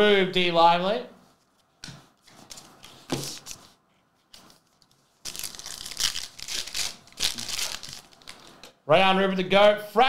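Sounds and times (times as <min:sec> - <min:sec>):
card pack wrapper ripping: 0:05.2 - 0:08.6.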